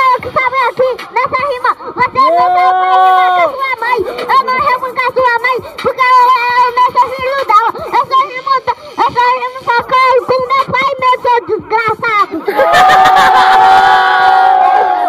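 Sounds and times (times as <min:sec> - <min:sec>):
person rapping into a microphone: 0:00.0 - 0:12.5.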